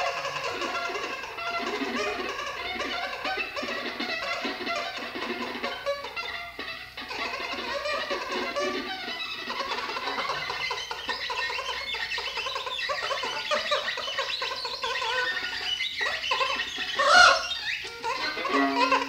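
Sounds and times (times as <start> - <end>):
saxophone and viola improvising: 0.0 - 10.8, 13.4 - 19.0.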